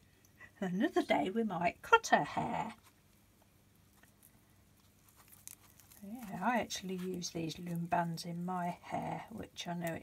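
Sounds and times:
fingers rustling grass: 3.9 - 8.8.

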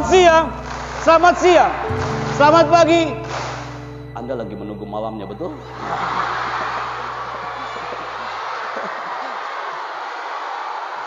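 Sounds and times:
crowd clapping: 0.0 - 3.9, 5.7 - 11.0
many girls' voices: 5.7 - 11.0.

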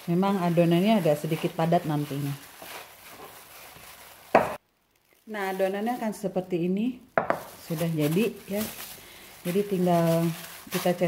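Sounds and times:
hands kneading dough: 0.0 - 4.6, 7.2 - 11.0.

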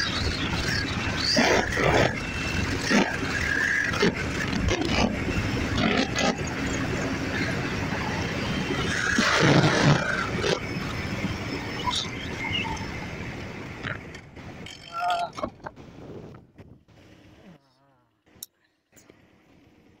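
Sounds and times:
wind rushing over microphone: 0.0 - 17.4.

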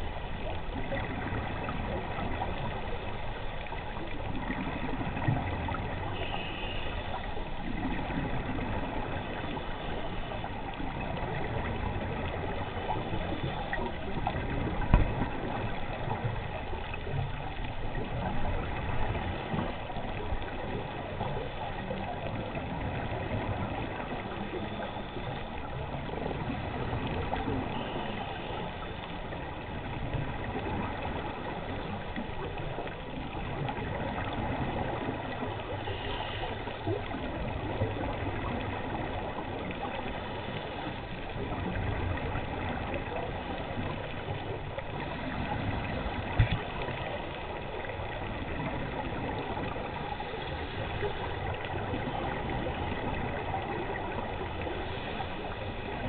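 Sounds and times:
muffled underwater rushing: 0.0 - 56.0.

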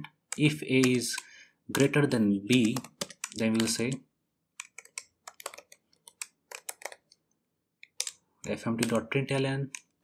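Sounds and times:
typing on computer keyboard: 0.3 - 4.0, 4.6 - 7.2, 7.8 - 10.0.

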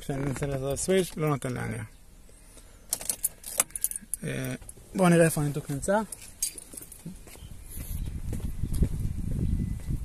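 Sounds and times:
car keys jangling: 2.9 - 4.8, 6.0 - 7.1.

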